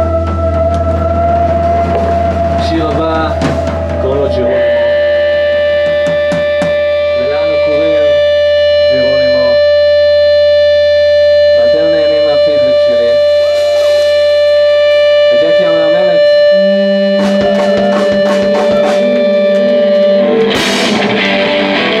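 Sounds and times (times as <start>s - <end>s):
person singing into microphone: 0.0s - 3.8s, 15.5s - 21.3s
held guitar note drone: 0.0s - 22.0s
low bass drone: 0.0s - 22.0s
drum hits: 1.6s - 4.4s, 5.8s - 6.8s, 17.2s - 21.2s.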